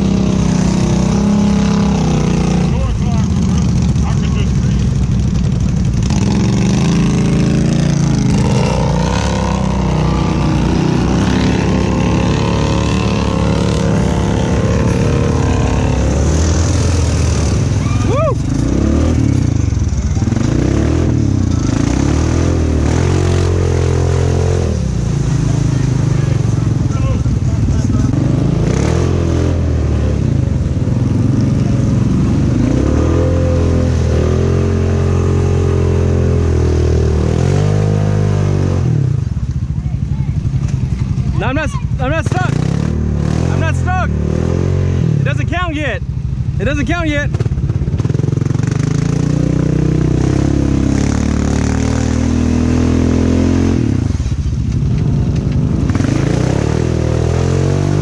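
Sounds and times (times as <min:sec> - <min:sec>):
atv engine revving: 0:00.0 - 0:58.0.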